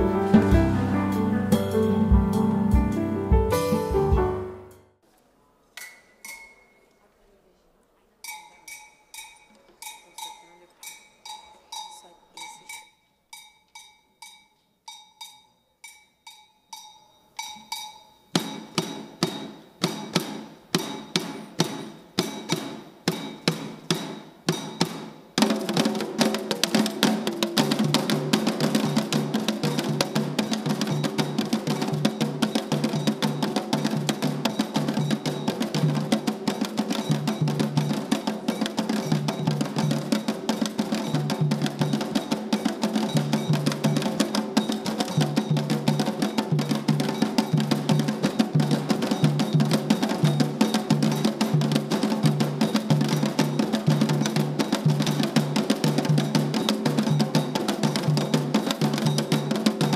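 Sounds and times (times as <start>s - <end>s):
hand drum ensemble: 0.0s - 4.4s, 17.4s - 59.9s.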